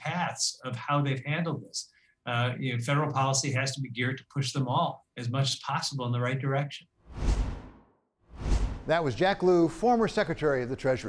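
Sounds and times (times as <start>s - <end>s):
transition swoosh effect: 7.1s - 9.0s.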